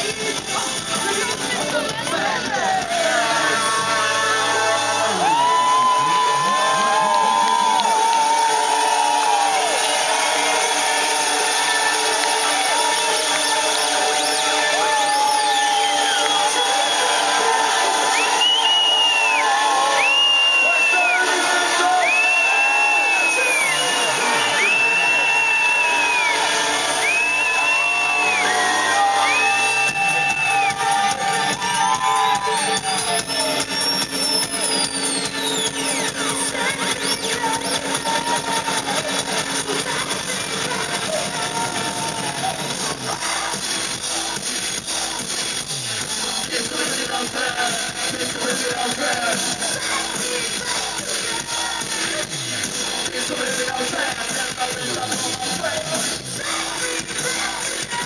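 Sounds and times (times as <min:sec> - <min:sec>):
electronic dance music: 0:00.0 - 0:58.0.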